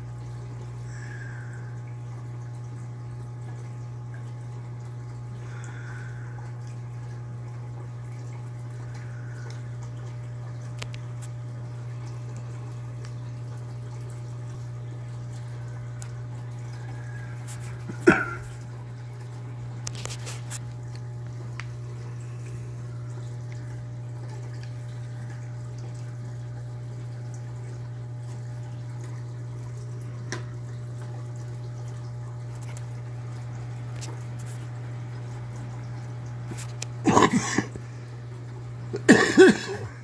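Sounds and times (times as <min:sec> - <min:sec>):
water trickling and dripping: 0:00.0 - 0:37.1
aquarium pumps humming: 0:00.0 - 0:40.0.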